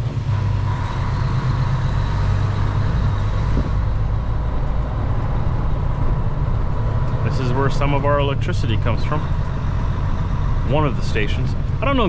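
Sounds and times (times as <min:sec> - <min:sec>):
diesel engine droning: 0:00.0 - 0:12.0
road noise rush: 0:00.0 - 0:12.0.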